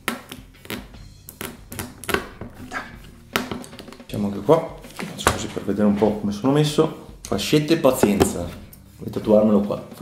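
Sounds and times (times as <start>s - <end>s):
quiet background music: 0.0s - 10.0s.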